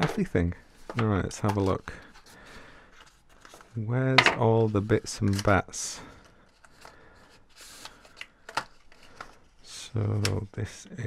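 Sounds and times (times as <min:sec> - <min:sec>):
packaging rustling: 0:04.5 - 0:09.7.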